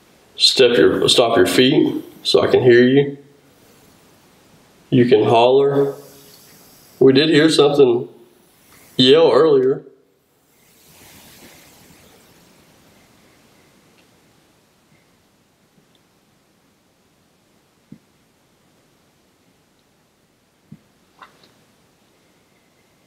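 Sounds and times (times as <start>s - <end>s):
faint hiss: 0.0s - 23.0s.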